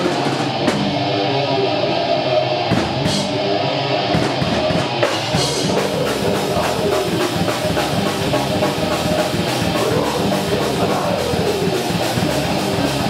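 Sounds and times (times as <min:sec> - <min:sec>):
death metal band playing: 0:00.0 - 0:13.0.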